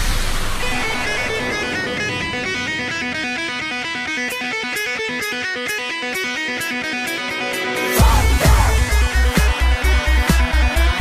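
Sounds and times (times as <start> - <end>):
loud electronic music: 0.0 - 11.0
picked electric guitar notes: 0.5 - 11.0.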